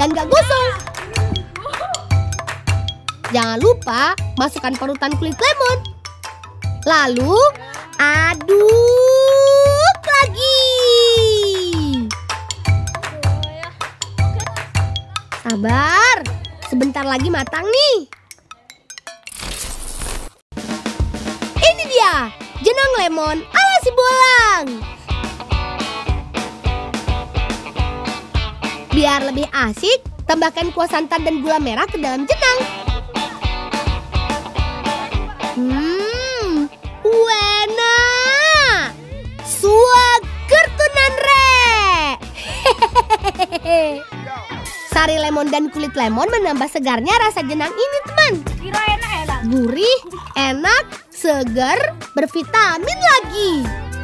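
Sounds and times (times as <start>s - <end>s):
background music: 0.0s - 20.0s, 20.6s - 54.0s.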